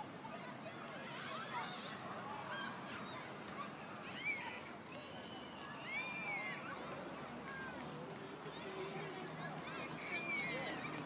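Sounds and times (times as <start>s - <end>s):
street background murmur: 0.0s - 11.0s.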